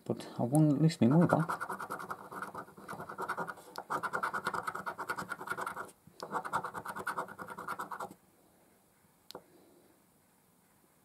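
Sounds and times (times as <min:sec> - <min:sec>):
coin scraping scratch card: 0:01.0 - 0:08.2.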